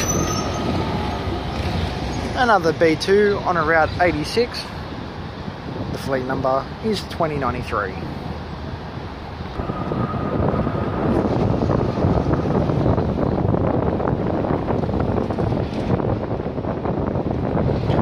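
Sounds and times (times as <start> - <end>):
tram pulling away: 0.0 - 2.9
wind buffeting microphone: 0.0 - 18.0.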